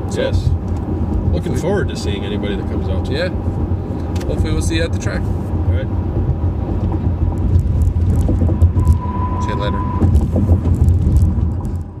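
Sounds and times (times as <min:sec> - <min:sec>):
road and tyre rumble in car: 0:00.0 - 0:12.0.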